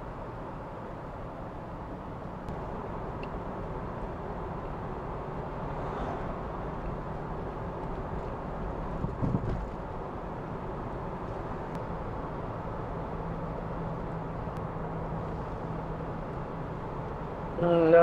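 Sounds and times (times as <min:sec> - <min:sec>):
car engine hum: 0:00.0 - 0:18.0
road and tyre noise: 0:00.0 - 0:18.0.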